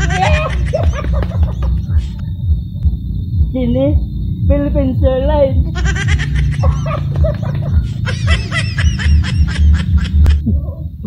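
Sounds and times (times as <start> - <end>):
person laughing hard: 0.0 - 2.2, 5.7 - 10.5
low rumble: 0.0 - 11.0.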